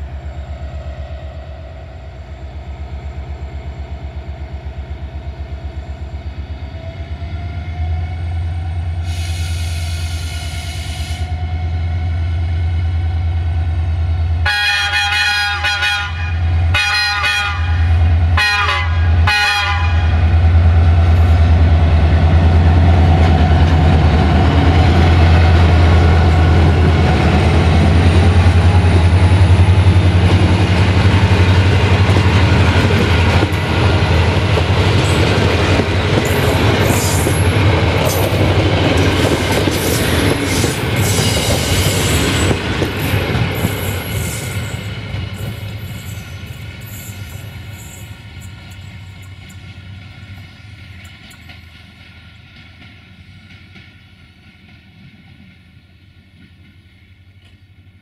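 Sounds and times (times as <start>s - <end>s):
locomotive engine drone: 0.0s - 52.6s
locomotive horn blasts: 14.4s - 20.3s
train wheels rolling over rails: 20.2s - 58.0s
high wheel squeals: 43.8s - 49.2s.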